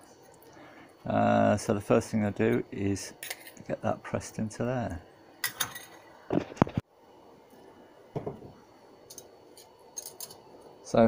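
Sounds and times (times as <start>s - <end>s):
small steel parts clinking: 9.1s - 10.4s.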